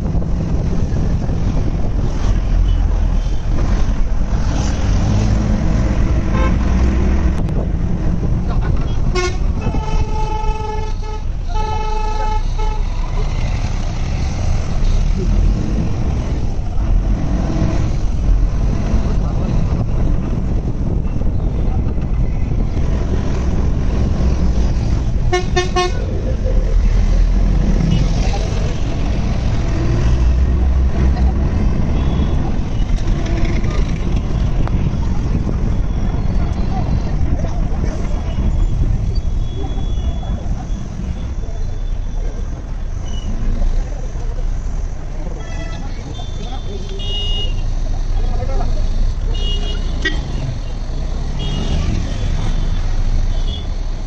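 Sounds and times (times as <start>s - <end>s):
heavy traffic rumble: 0.0s - 54.0s
vehicle horn long blasts: 9.2s - 12.9s, 25.3s - 26.0s.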